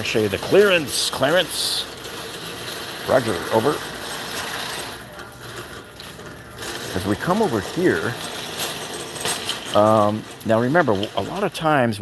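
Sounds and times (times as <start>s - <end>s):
cart wheels and basket rattling: 0.0s - 12.0s
shopping cart rolling on concrete: 0.0s - 12.0s.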